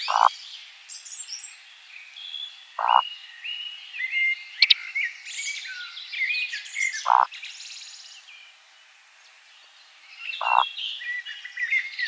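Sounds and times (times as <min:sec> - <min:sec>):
bird low croaking grunt: 0:00.0 - 0:00.3, 0:02.8 - 0:03.0, 0:10.4 - 0:10.7
birds singing thinly: 0:00.0 - 0:12.0.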